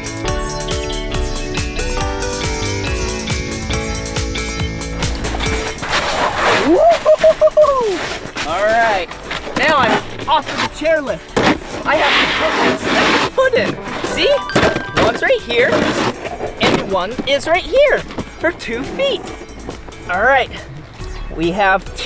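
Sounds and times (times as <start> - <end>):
background music: 0.0 - 22.0
man whooping and vocal glides: 6.6 - 8.1.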